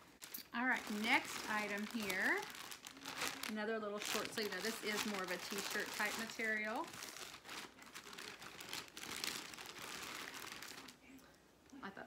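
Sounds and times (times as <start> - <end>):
plastic wrapping crinkling: 0.0 - 11.3.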